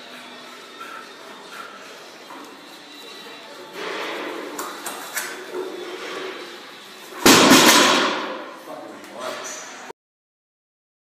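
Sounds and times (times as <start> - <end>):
barbell crashing onto wooden blocks: 7.2 - 8.4.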